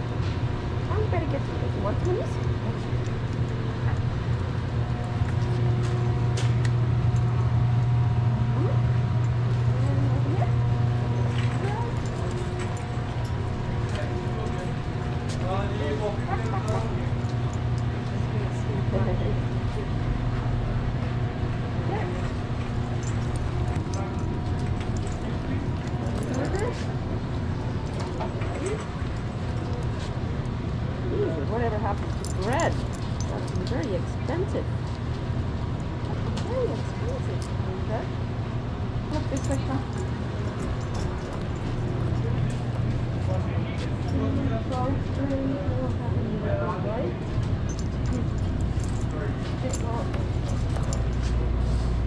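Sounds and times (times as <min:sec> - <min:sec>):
indistinct voices of shoppers: 0:00.0 - 0:52.0
steady low hum: 0:00.0 - 0:52.0.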